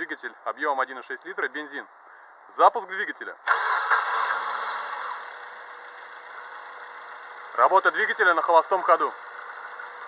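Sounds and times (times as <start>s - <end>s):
car engine revs dropping to idle: 3.5s - 8.2s.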